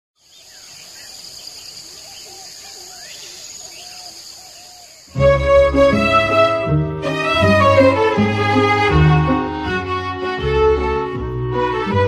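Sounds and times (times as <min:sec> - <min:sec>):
high insect chorus: 0:00.2 - 0:05.2.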